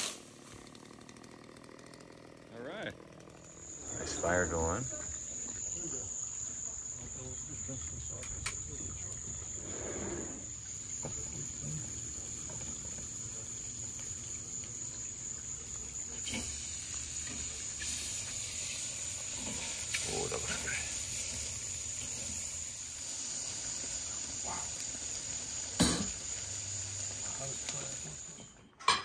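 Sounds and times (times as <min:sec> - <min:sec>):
insects droning: 0:03.3 - 0:28.7.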